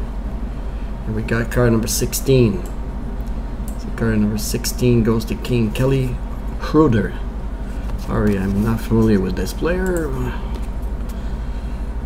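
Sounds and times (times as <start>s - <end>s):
steady low hum: 0.0s - 12.0s
man speaking: 1.1s - 2.7s, 3.9s - 7.3s, 8.1s - 10.5s.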